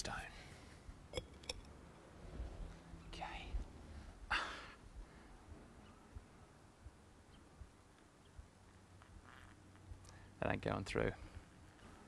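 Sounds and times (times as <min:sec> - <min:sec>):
faint low background noise: 0:00.0 - 0:12.0
man quietly speaking: 0:03.1 - 0:03.6.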